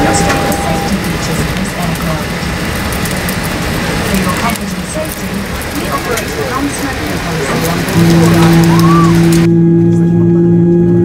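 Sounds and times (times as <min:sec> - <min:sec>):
murmur of passenger voices: 0:00.0 - 0:10.9
airliner cabin hum: 0:00.0 - 0:11.0.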